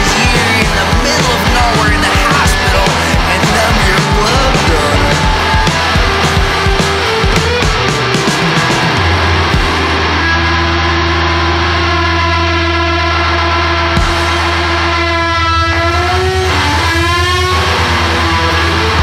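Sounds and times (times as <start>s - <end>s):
blues-rock band music: 0.0s - 19.0s
held lead guitar note bending: 0.0s - 19.0s.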